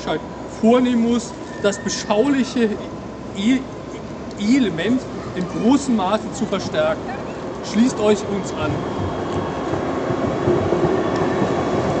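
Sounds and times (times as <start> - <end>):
tram rolling on rails: 0.0 - 12.0.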